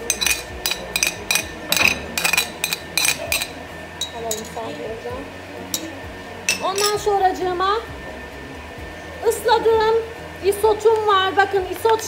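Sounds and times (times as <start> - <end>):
spoon clinking on plate and bowl: 0.0 - 4.8, 5.7 - 7.1.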